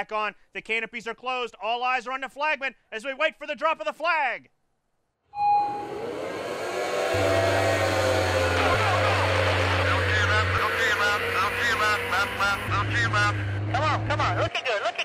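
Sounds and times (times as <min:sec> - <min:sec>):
short tone: 0:05.4 - 0:11.0
outboard engines accelerating: 0:05.4 - 0:14.5.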